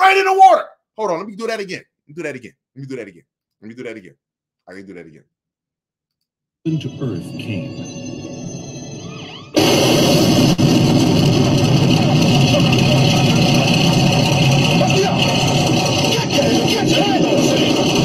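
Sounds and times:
boat engine: 10.6 - 18.0.

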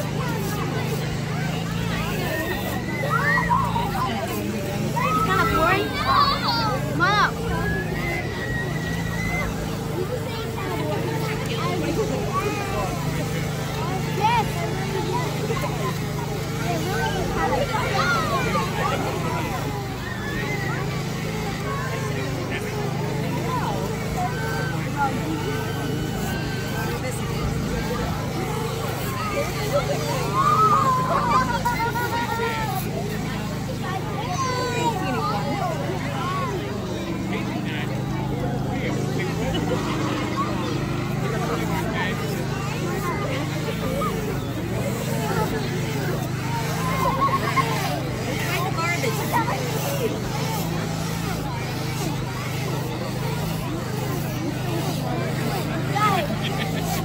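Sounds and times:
children's voices: 0.0 - 57.0
crowd chatter: 0.0 - 57.0
low motor hum: 0.0 - 57.0.

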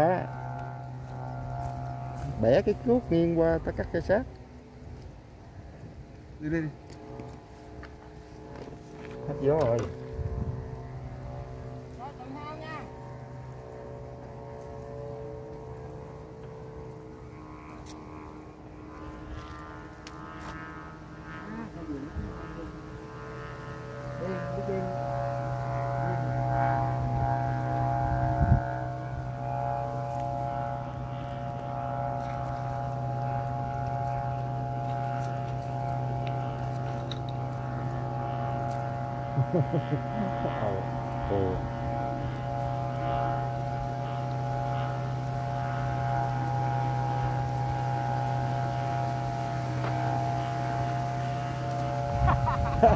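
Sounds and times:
kite flutes droning: 0.0 - 52.9
strong wind: 9.6 - 11.2, 27.0 - 29.2.

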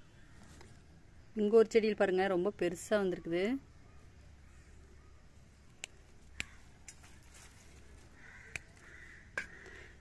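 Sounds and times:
sharp clicks of handling vines: 5.7 - 9.8
faint hoarse calls: 8.1 - 10.0.

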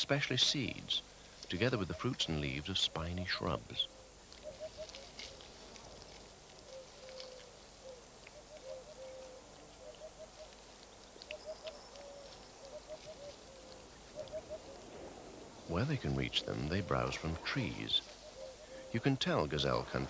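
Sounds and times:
bird calling with short low notes: 0.0 - 5.6, 6.6 - 20.0
faint ticks: 4.2 - 14.5.

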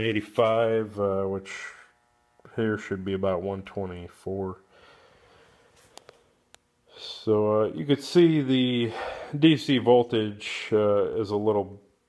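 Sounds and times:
breath: 4.7 - 5.9, 8.9 - 9.4.

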